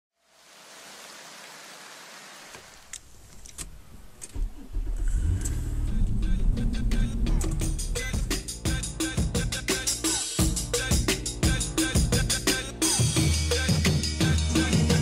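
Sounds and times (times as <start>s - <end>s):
car engine starting: 3.6s - 8.4s
music with heavy bass beat: 5.2s - 15.0s.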